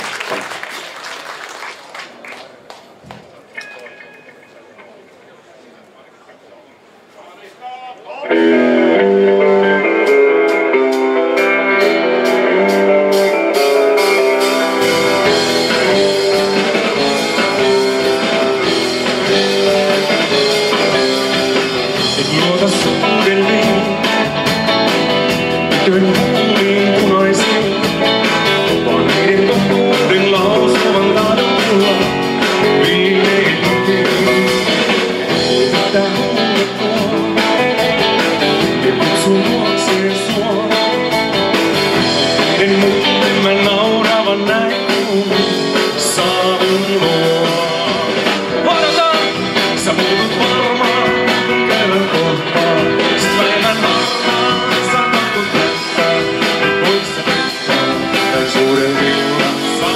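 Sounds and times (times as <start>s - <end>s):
rock band with electric guitar: 8.2s - 59.9s
man singing into microphone: 14.0s - 24.5s, 25.6s - 59.9s.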